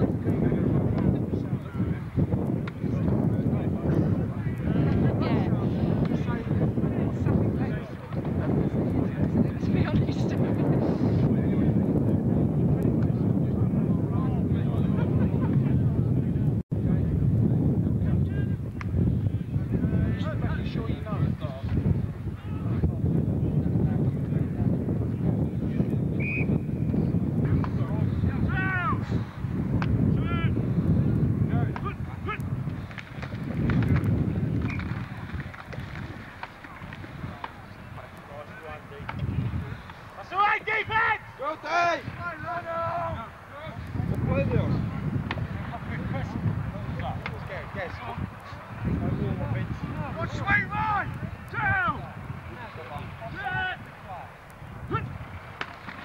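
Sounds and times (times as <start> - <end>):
faint voices talking: 0.0 - 56.0
wind rumbling on microphone: 0.0 - 56.0
players shouting calls: 20.0 - 22.8, 26.2 - 56.0.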